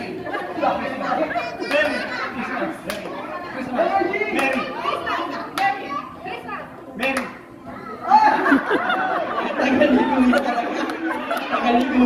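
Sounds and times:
children's voices: 0.0 - 6.8, 7.6 - 12.0
people talking and calling out: 0.0 - 12.0.

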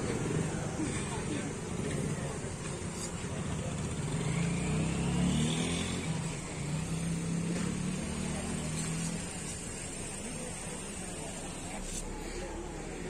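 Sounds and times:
crowd noise: 0.0 - 13.0
engine running low hum: 0.0 - 13.0.

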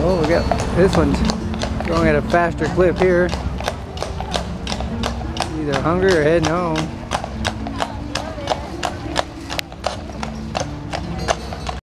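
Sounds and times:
horse hooves clip-clopping on pavement: 0.0 - 11.8.

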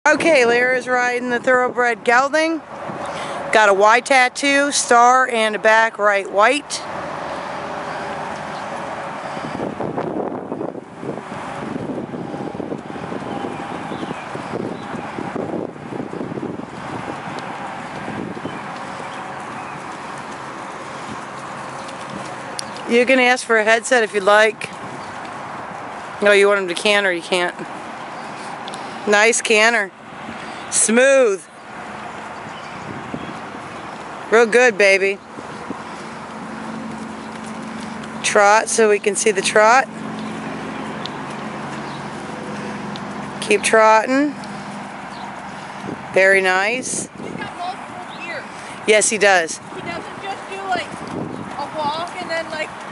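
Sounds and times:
wind buffeting microphone: 0.1 - 52.9
horse hoofbeats trotting on grass: 4.6 - 30.4, 31.5 - 52.9
horse hoofbeats on grass: 10.9 - 22.9.

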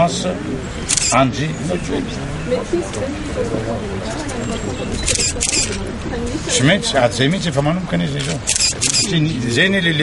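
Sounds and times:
murmur of voices: 0.0 - 10.0
camera shutter clicks: 0.9 - 1.2, 5.1 - 5.8, 8.2 - 9.1.

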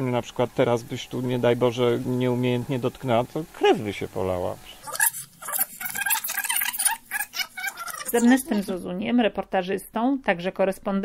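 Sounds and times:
sped-up speech chattering: 4.7 - 8.7
tape machine spooling fast: 4.8 - 8.8.

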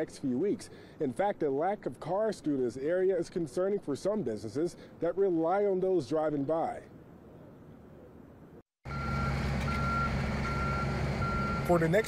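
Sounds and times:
diesel construction machinery running: 8.9 - 12.0
reversing alarm beeps: 8.9 - 12.0.

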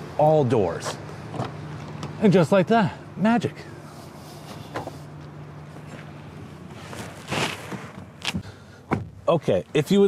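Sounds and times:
rustling shuffle: 5.7 - 8.4.

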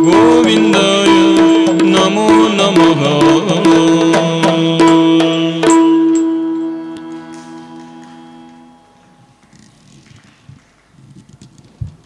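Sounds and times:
harmonium drone: 0.0 - 10.0.

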